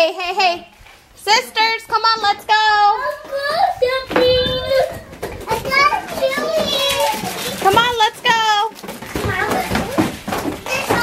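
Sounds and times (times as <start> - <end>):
young child calling: 3.0 - 7.4.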